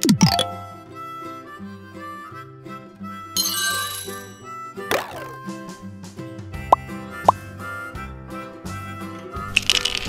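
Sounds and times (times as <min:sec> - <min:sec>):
rising plop blips: 0:00.0 - 0:00.8
bouncy children's music: 0:00.0 - 0:10.0.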